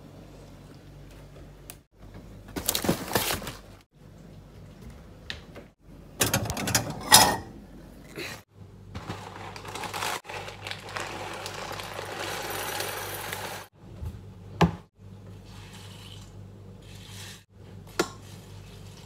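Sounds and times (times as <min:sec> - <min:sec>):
cereal pouring into bowl: 0:09.1 - 0:13.7.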